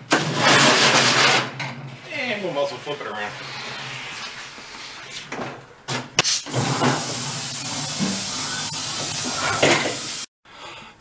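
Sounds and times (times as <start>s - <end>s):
compressed air hissing: 6.2s - 10.3s.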